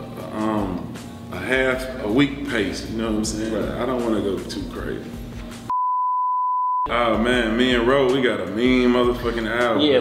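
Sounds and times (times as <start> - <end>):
high electronic beep: 5.7 - 6.9.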